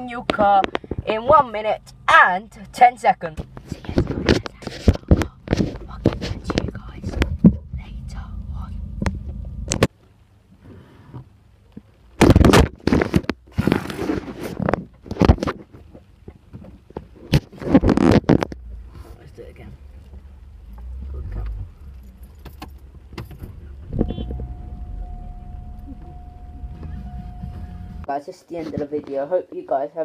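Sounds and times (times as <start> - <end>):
phone handling bumps and rustles: 0.0 - 1.5, 3.3 - 7.8, 12.2 - 18.6
car engine idling: 0.0 - 12.2, 18.5 - 28.1.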